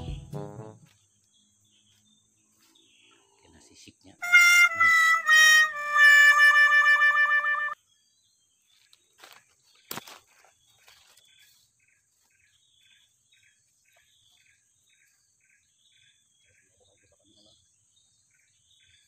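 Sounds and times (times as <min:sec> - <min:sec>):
loud reedy musical tone: 0:04.2 - 0:07.8
faint regular chirping: 0:07.8 - 0:19.0.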